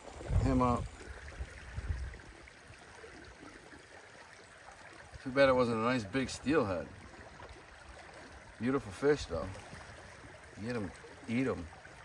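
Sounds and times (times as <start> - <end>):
stream water running: 0.0 - 12.0.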